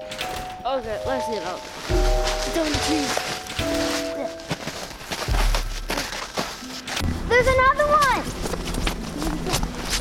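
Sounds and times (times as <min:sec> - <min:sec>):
held background music notes: 0:00.0 - 0:10.0
footsteps crunching in snow: 0:00.8 - 0:10.0.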